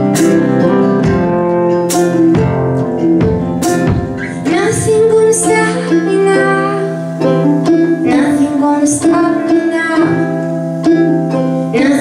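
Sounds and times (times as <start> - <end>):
electric bass: 0.0 - 12.0
strummed acoustic guitar: 0.0 - 12.0
woman singing: 4.2 - 12.0.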